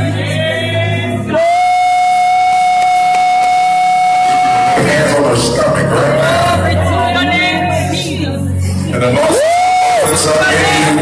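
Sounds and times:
man singing gospel through microphone: 0.0 - 1.7, 4.6 - 8.0, 8.9 - 11.0.

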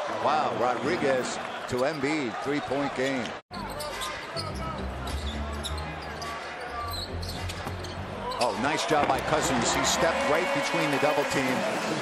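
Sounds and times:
low arena music: 3.5 - 12.0.

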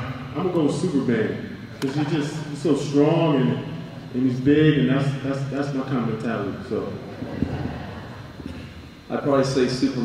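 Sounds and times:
microphone handling rumble: 7.2 - 8.7.

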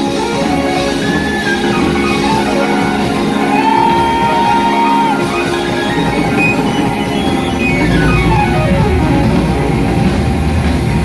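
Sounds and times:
funk rock band playing: 0.0 - 11.0.

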